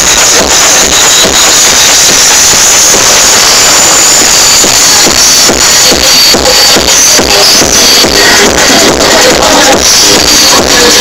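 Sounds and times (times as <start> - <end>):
kick drum beat: 0.0 - 11.0
psytrance over sound system: 0.0 - 11.0.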